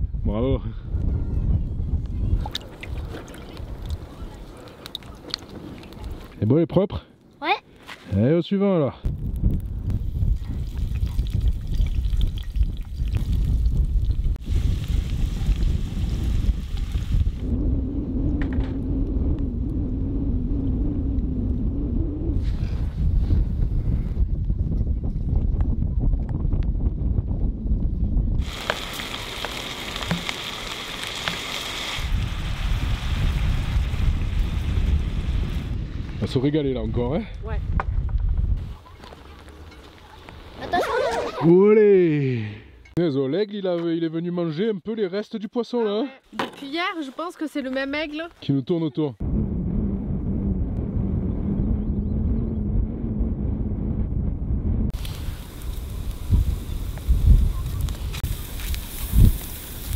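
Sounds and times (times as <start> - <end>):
wind buffeting microphone: 0.0 - 6.4, 9.0 - 31.3, 31.9 - 41.4, 49.2 - 59.9.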